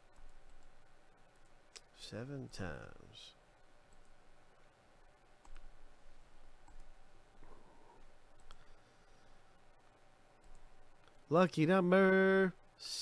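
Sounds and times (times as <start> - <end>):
computer mouse clicks: 5.4 - 6.0, 6.6 - 7.0, 8.3 - 8.8, 10.4 - 11.2.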